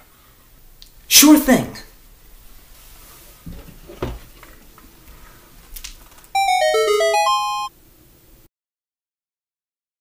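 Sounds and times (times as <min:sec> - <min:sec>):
electronic chime jingle: 0:06.4 - 0:07.7.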